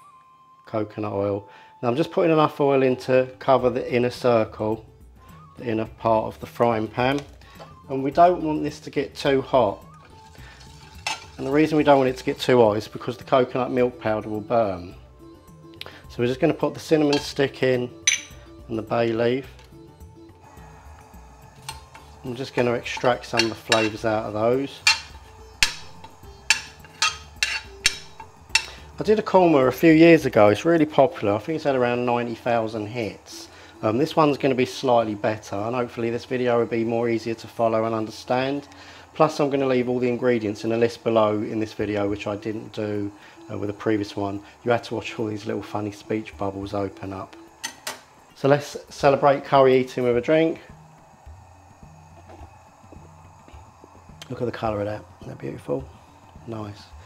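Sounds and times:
metal spoon clinking on pan: 0:10.8 - 0:11.5, 0:17.0 - 0:17.4, 0:18.0 - 0:18.4, 0:21.6 - 0:24.1, 0:24.7 - 0:28.9, 0:47.6 - 0:48.1
steady low hum: 0:20.3 - 0:30.6, 0:34.8 - 0:57.0.

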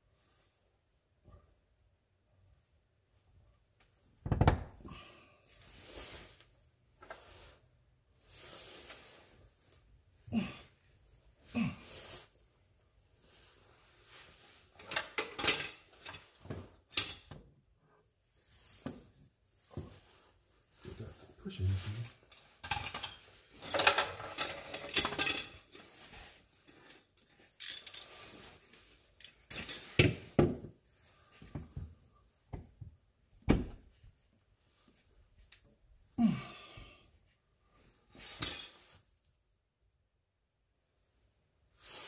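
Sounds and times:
metal tools clinking: 0:14.8 - 0:17.4, 0:22.3 - 0:28.2, 0:29.1 - 0:30.0, 0:38.3 - 0:38.9.

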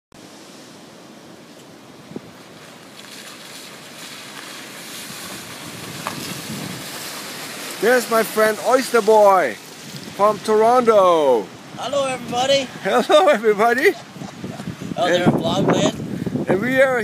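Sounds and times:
tyres hissing on wet driveway: 0:00.2 - 0:17.0.

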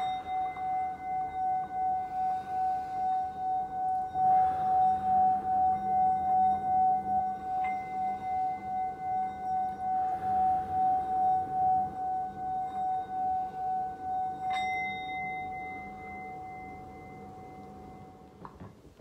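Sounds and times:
singing bowl tone: 0:00.0 - 0:19.0.

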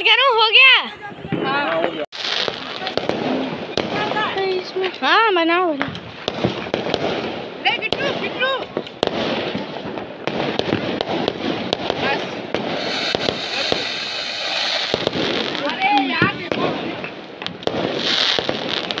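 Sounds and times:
firecrackers cracking and popping: 0:01.3 - 0:19.0
high hissing crackle: 0:12.0 - 0:16.2.

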